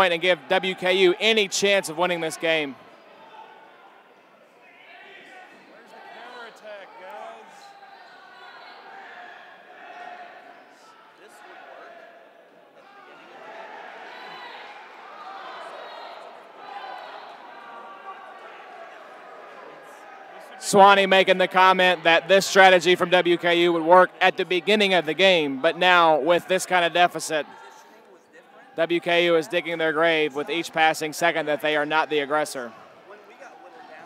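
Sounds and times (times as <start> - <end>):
players calling out: 0.0 - 2.8, 20.4 - 27.7, 28.8 - 33.8.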